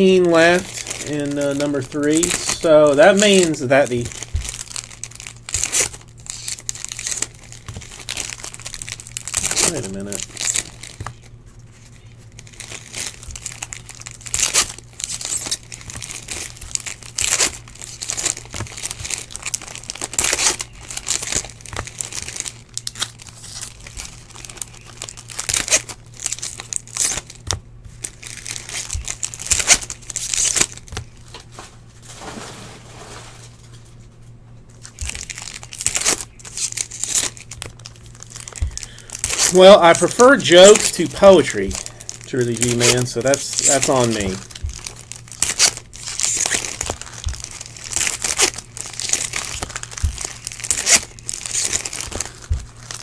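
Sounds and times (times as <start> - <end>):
foil wrappers tearing and crinkling: 0.0 - 33.9, 34.7 - 53.0
cards being handled: 0.0 - 53.0.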